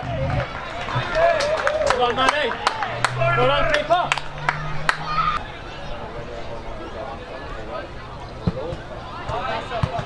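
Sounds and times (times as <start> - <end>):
people calling out: 0.6 - 6.7.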